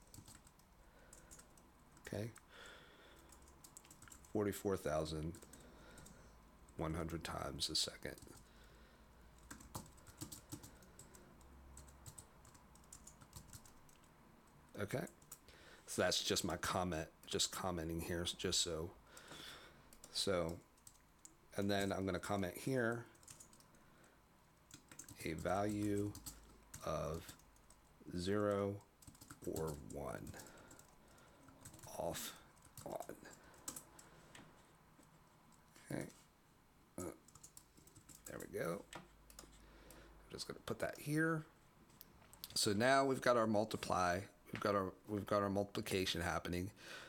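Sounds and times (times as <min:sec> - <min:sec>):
typing on computer keyboard: 0:00.0 - 0:02.1, 0:03.1 - 0:04.3, 0:05.3 - 0:06.2, 0:09.4 - 0:14.1, 0:19.9 - 0:21.3, 0:23.1 - 0:23.8, 0:24.7 - 0:32.0, 0:32.6 - 0:34.1, 0:37.3 - 0:38.5, 0:39.3 - 0:39.6.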